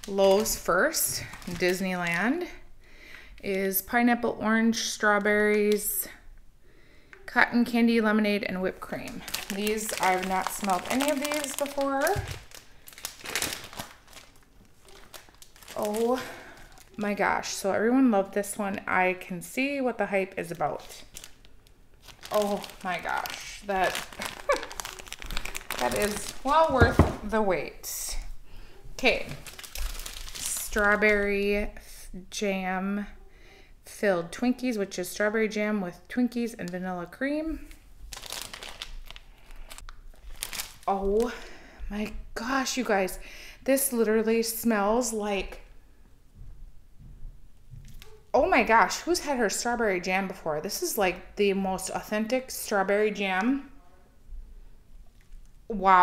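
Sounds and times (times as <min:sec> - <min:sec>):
plastic bag crinkling: 0:00.0 - 0:02.5, 0:08.8 - 0:17.5, 0:20.3 - 0:27.5, 0:29.0 - 0:31.3, 0:38.0 - 0:41.6.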